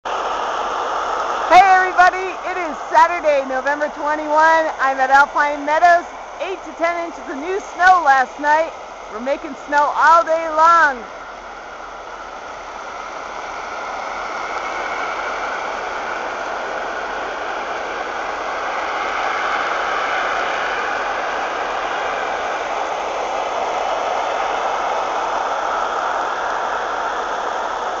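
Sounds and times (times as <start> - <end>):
snowmaking guns rushing: 0.1 - 28.0.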